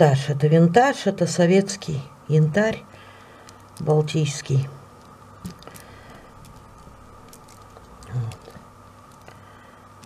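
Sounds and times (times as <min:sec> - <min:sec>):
steady low hum: 0:00.0 - 0:10.0
beads clicking and rustling: 0:03.4 - 0:04.2, 0:04.9 - 0:09.4.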